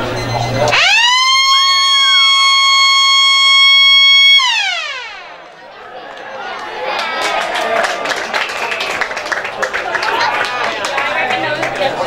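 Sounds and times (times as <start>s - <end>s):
siren winding up and holding: 0.0s - 5.4s.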